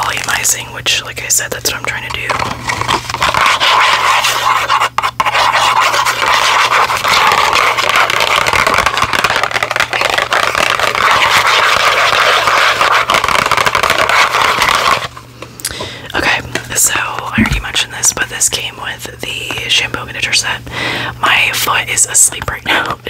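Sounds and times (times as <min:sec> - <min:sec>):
fingernails scratching cardboard box: 0:03.2 - 0:08.4, 0:10.2 - 0:15.1.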